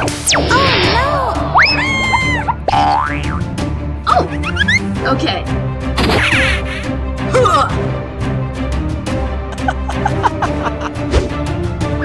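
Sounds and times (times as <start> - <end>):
sliding pitch glides: 0.0 - 2.8
background music: 0.0 - 12.0.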